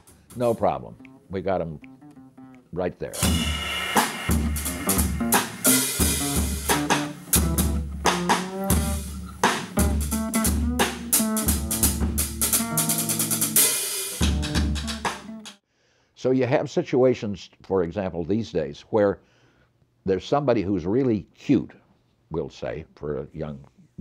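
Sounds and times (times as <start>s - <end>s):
drum kit beat: 0.0s - 15.6s
band playing: 0.3s - 15.6s
fretless bass line: 0.4s - 15.5s.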